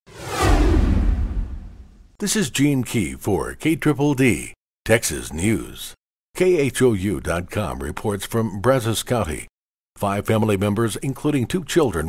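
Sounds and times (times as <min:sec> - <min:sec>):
deep rumble: 0:00.1 - 0:02.1
whoosh sound effect: 0:00.1 - 0:02.1.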